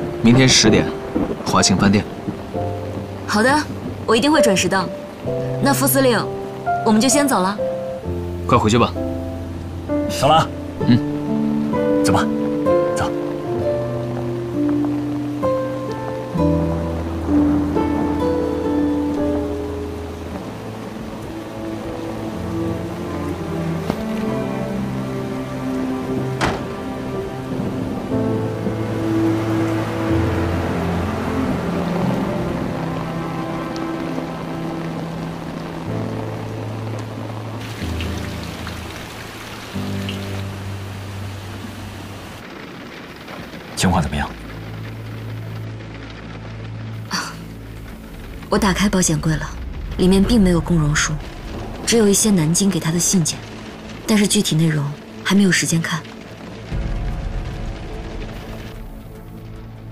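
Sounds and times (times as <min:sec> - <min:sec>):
heavy rain: 0:00.0 - 0:59.9
slow background music: 0:00.0 - 0:59.9.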